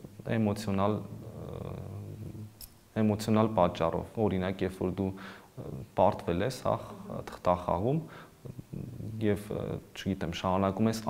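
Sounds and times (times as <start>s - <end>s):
person murmuring: 1.0s - 2.6s, 8.4s - 9.9s.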